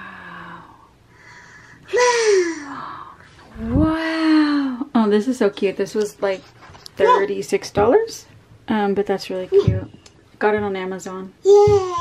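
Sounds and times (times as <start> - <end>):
faint breath: 1.1 - 3.3.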